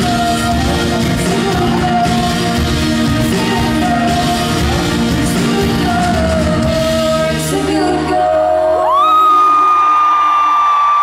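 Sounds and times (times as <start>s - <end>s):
guitars and singing: 0.0s - 9.1s
high-pitched scream: 8.8s - 11.0s.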